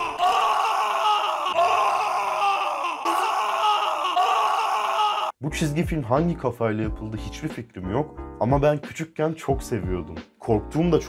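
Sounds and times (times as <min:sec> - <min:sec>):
cartoon character screaming: 0:00.0 - 0:05.4.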